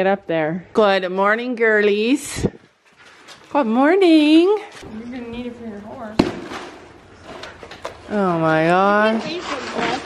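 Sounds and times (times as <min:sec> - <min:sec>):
faint rustling: 0:02.2 - 0:10.0.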